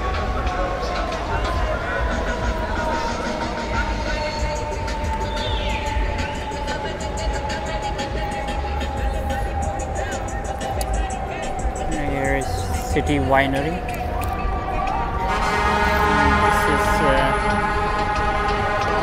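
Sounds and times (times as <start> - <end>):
background voices: 0.0 - 19.0
music: 0.0 - 19.0
steady tone falling in pitch: 0.0 - 19.0.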